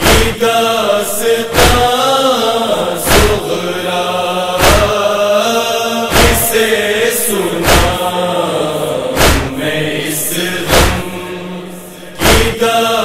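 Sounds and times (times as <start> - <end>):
men chanting in unison: 0.0 - 13.0
collective chest-beating: 1.5 - 2.0, 3.0 - 3.6, 4.5 - 5.1, 6.1 - 6.7, 7.5 - 8.1, 9.2 - 11.3, 12.1 - 12.6.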